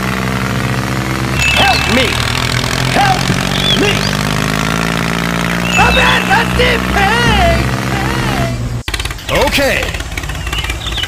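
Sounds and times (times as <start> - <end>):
tractor engine idling: 0.0 - 4.5, 5.6 - 11.0.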